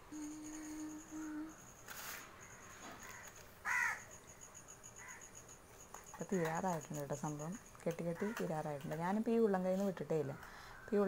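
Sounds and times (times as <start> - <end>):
faint low hum: 0.0 - 3.3.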